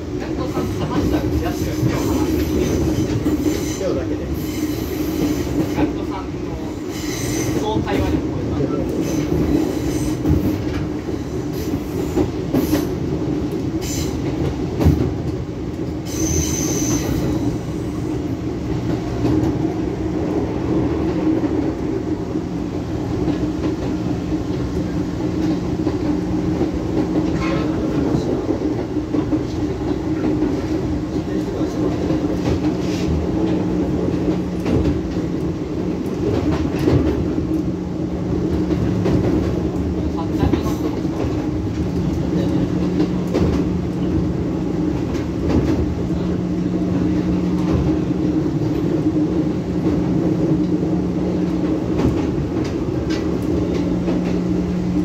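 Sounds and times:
train wheels rumbling on rail: 0.0 - 55.0
high wheel squeals: 16.1 - 17.6.

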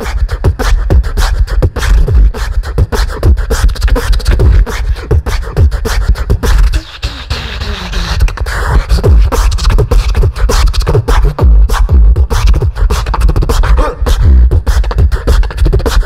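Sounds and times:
beatboxing through microphone: 0.0 - 16.0.

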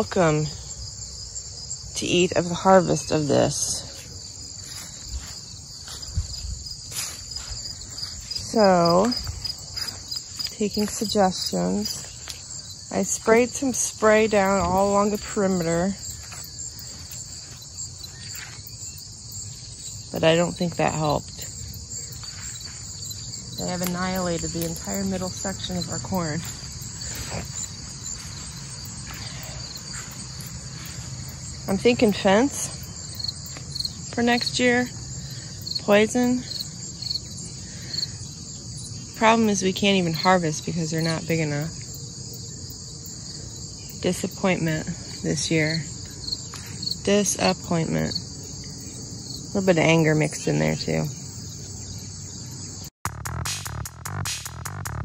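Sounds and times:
crickets chirping: 0.0 - 53.0.

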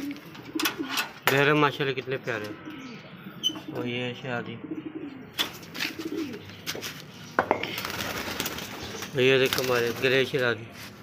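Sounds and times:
pigeons cooing: 0.0 - 10.1.

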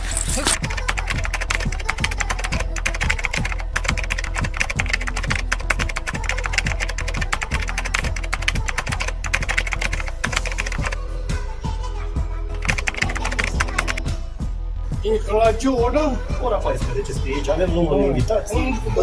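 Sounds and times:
rapid keyboard typing: 0.0 - 11.0, 12.5 - 14.0.

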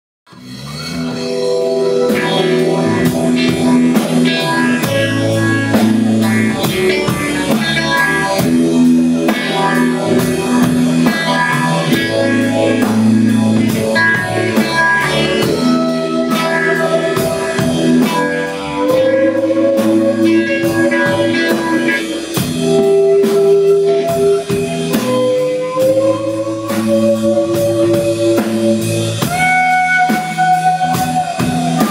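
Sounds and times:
bass guitar: 0.3 - 31.9
drum kit beat: 0.3 - 31.9
electric guitar: 0.3 - 31.9
keyboards: 0.3 - 31.9.

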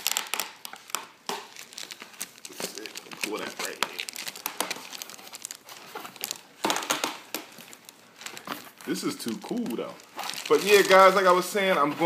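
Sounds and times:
plastic bag crinkling: 0.0 - 12.0
cardboard scraping: 8.4 - 12.0.

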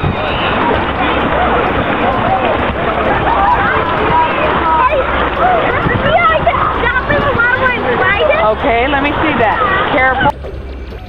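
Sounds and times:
children calling out: 0.0 - 10.4
creek water flowing over rock: 0.0 - 10.8.

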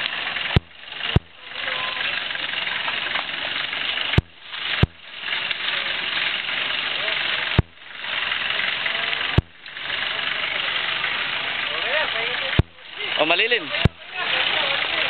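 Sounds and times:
engine running at low speed: 0.0 - 15.0.

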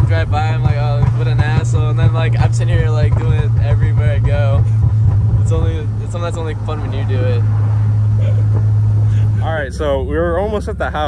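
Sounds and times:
voices: 0.0 - 4.7, 5.4 - 7.4, 8.2 - 11.0
car engine and road drone: 0.0 - 11.0.

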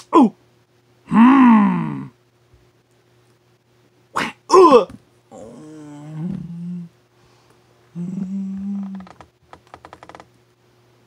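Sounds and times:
man groaning: 1.1 - 2.2, 4.2 - 6.9, 7.9 - 9.1.

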